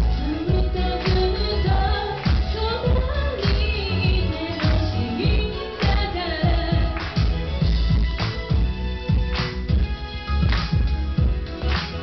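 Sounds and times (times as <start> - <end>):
woman singing pop song: 0.0 - 7.7
steady drum beat: 0.0 - 12.0.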